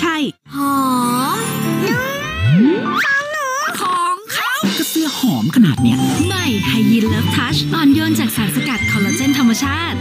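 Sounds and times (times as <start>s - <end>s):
woman speaking: 0.0s - 2.2s, 3.0s - 10.0s.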